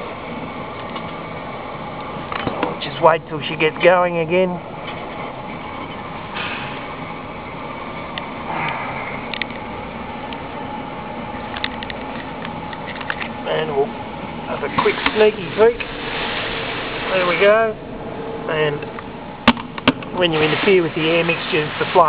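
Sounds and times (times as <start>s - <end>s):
blower fan and fire whooshing: 0.0s - 22.0s.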